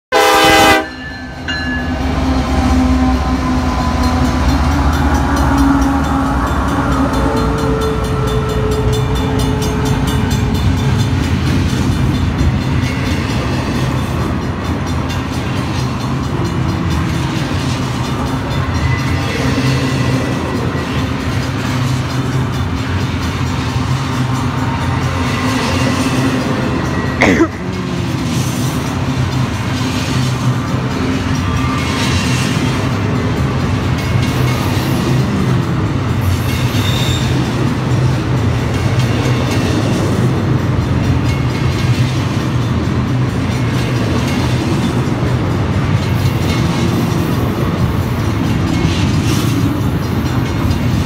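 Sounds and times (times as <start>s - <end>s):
locomotive horn: 0.1s - 1.2s, 2.0s - 10.6s
locomotive engine: 0.1s - 51.0s
train wheels rumbling past: 0.1s - 51.0s.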